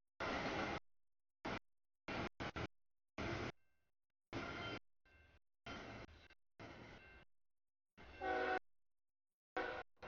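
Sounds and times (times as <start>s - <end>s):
diesel locomotive horn blasts: 8.2s - 8.7s, 9.6s - 10.0s.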